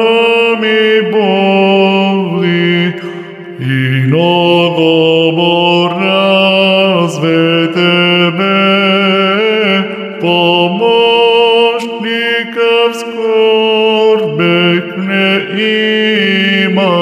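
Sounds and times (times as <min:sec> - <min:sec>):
chant melody: 0:00.0 - 0:17.0
held vocal drone: 0:00.0 - 0:17.0.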